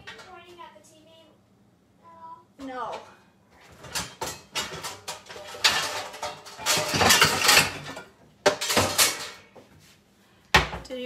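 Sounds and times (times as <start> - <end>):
pots and pans clattering in cabinet: 2.7 - 9.7.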